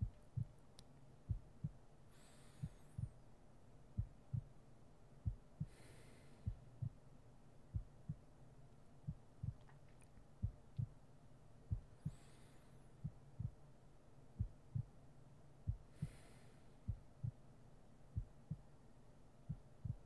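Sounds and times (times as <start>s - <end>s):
heartbeat thumps: 0.0s - 0.6s, 1.3s - 1.8s, 2.5s - 3.2s, 3.9s - 4.6s, 5.2s - 7.0s, 7.7s - 8.3s, 9.0s - 9.8s, 10.4s - 11.0s, 11.7s - 12.3s, 13.0s - 13.7s, 14.4s - 15.0s, 15.6s - 17.4s, 18.1s - 18.7s, 19.5s - 20.0s
faint low hum: 0.0s - 20.0s.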